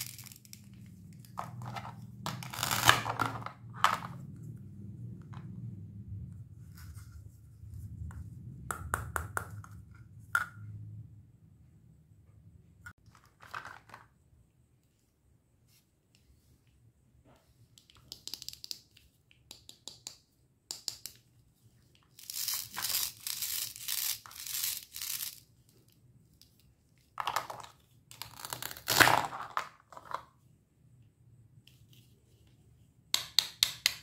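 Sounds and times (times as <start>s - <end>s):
hook-and-loop fastener tearing: 2.4s - 3.1s, 28.2s - 29.1s.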